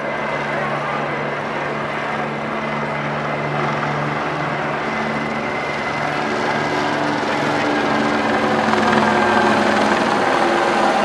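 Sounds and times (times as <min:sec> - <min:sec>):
helicopter hovering: 0:00.0 - 0:11.0.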